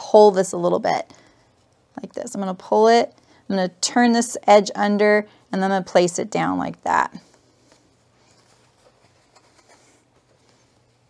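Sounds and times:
fabric rustling by hand: 7.1s - 11.0s.

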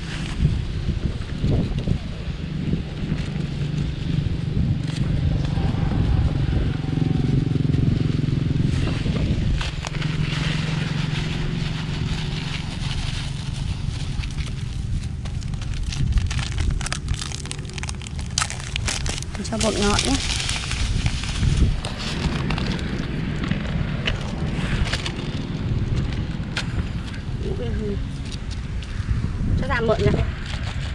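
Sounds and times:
low motor hum: 0.0s - 30.9s
plastic packet crinkling: 9.6s - 23.5s.

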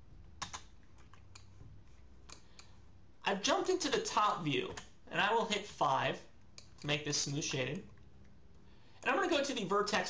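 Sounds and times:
low steady hum: 0.0s - 10.0s
keyboard and mouse clicks: 0.4s - 1.6s, 2.2s - 2.8s, 6.5s - 7.0s.

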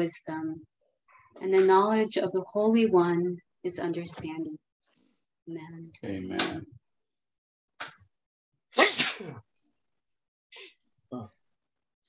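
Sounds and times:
person sneezing: 8.8s - 9.5s.

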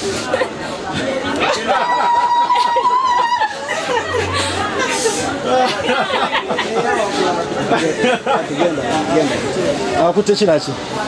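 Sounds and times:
people chattering excitedly: 0.0s - 11.0s.

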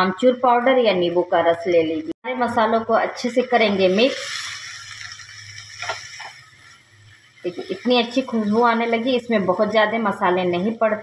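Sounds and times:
vegetables sizzling in oil: 1.9s - 11.0s.

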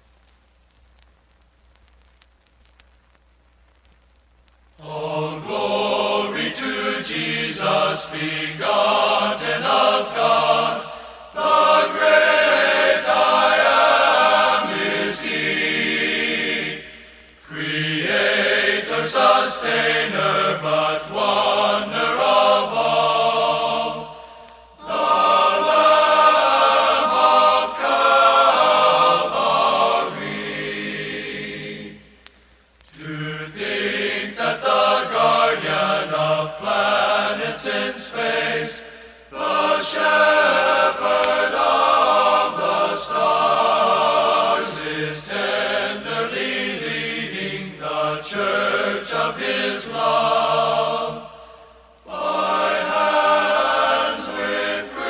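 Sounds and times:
male choir singing: 4.8s - 32.0s, 33.0s - 51.4s, 52.1s - 55.0s.

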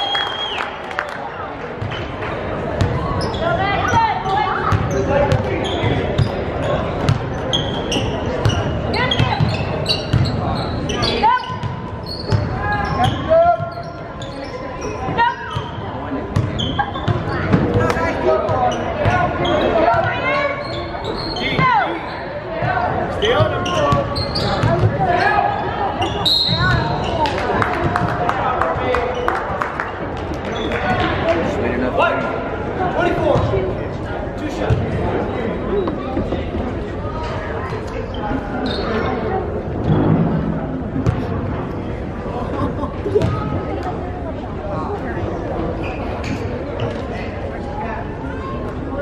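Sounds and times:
referee's whistle: 0.0s - 0.7s, 26.0s - 27.1s
people shouting and chattering: 0.0s - 49.0s.

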